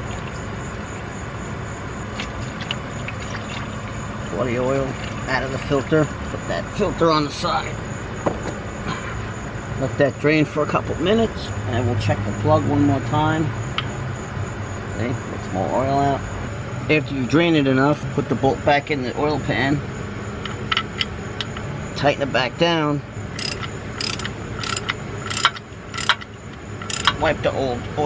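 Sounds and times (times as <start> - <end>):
metal bolt clicks and taps: 23.4 - 27.2.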